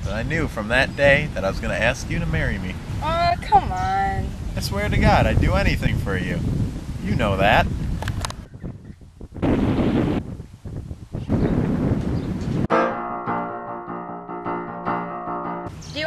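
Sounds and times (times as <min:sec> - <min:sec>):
wind buffeting microphone: 0:00.0 - 0:12.7
held music chord: 0:12.7 - 0:15.7.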